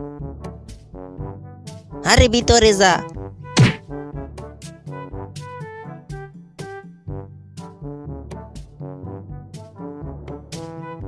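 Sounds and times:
comic background music: 2.1 - 3.0.

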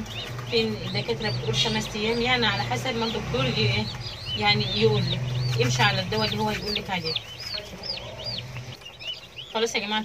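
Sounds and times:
chicks peeping: 0.0 - 10.0.

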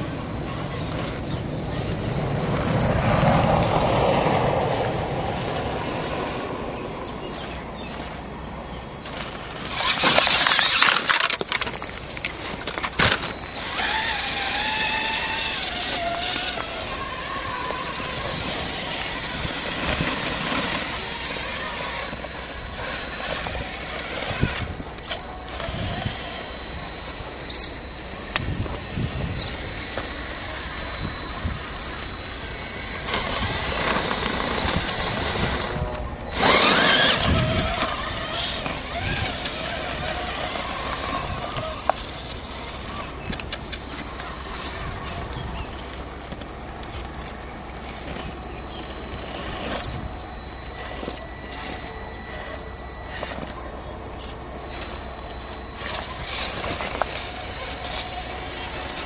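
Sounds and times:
toy car electric motor whining: 0.0 - 59.0.

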